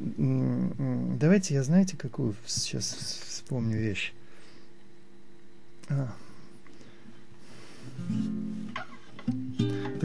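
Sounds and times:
acoustic guitar playing: 8.0 - 10.0.

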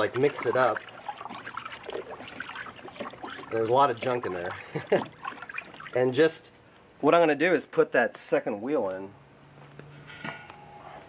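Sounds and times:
liquid sloshing in a tub: 0.0 - 6.7.

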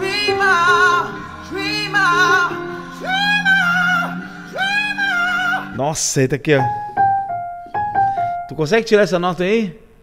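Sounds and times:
held accompaniment chords: 0.0 - 9.2.

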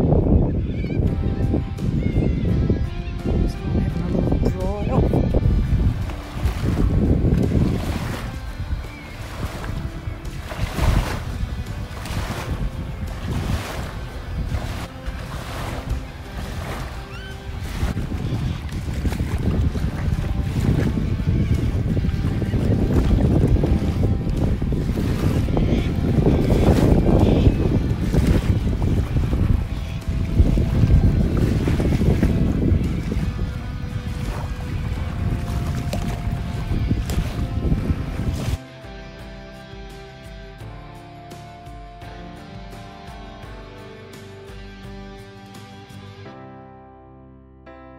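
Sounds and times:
wind buffeting microphone: 0.0 - 38.6
small waves lapping: 3.6 - 38.7.

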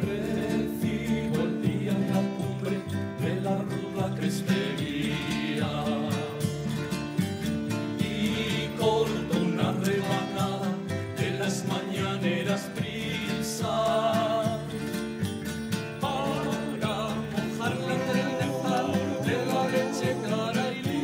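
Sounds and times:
men singing: 0.0 - 21.0
strummed acoustic guitars: 0.0 - 21.0.

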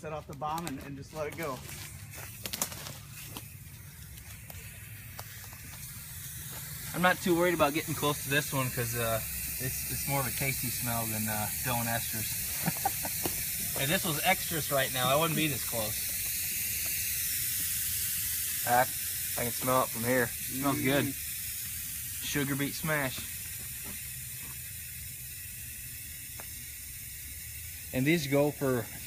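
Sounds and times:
sharp clicks: 0.2 - 1.4
aerosol spray hiss: 1.1 - 29.0.

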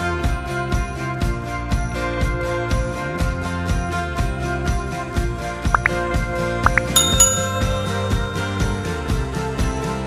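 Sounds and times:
bright bell dinging: 6.7 - 9.4.

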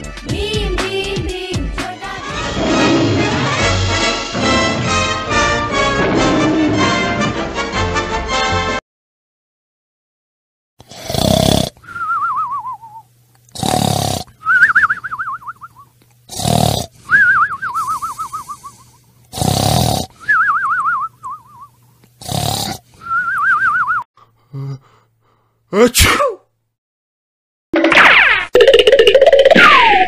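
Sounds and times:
cartoon rasping snores: 2.4 - 3.6, 5.9 - 7.3, 10.8 - 11.8, 13.5 - 14.4, 16.3 - 17.0, 17.8 - 20.2, 22.2 - 22.9, 24.5 - 24.8.

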